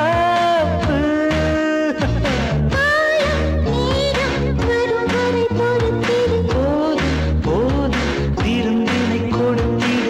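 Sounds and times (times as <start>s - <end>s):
band accompaniment with bass: 0.0s - 10.0s
woman singing film song: 0.9s - 10.0s.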